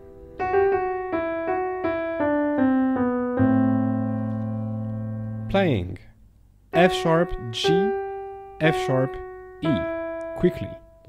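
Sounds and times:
piano melody: 0.0 - 6.0, 6.6 - 11.0
low piano bass note: 6.8 - 11.0.

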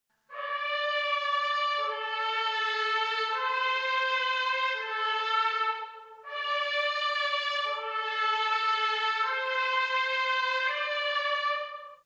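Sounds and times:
brass section held chords: 0.3 - 12.0.

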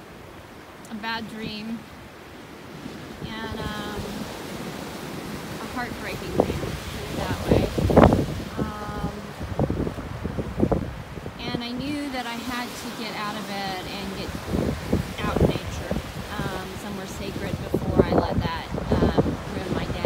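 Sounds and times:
waves breaking on rocky shore: 0.0 - 20.0
wind on microphone: 0.0 - 20.0.

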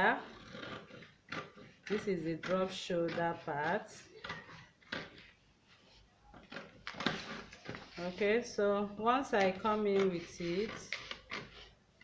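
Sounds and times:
scissors snipping paper: 0.3 - 5.2, 9.4 - 11.7.

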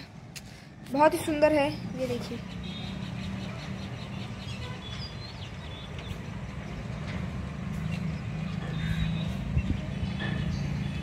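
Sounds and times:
birds chirping: 0.7 - 11.0.

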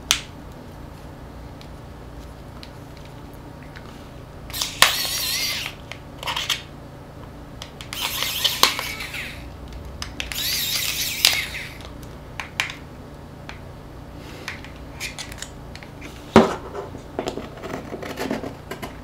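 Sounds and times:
tool clicking as it slips: 4.5 - 6.6, 7.6 - 9.4.

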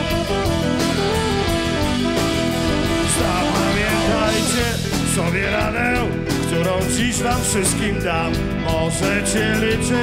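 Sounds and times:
bass and drums: 0.0 - 10.0
electric guitars ringing: 0.0 - 10.0.

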